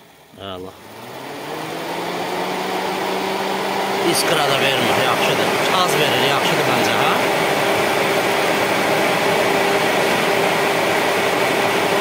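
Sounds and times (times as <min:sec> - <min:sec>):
electric fan motor whirring: 0:00.0 - 0:12.0.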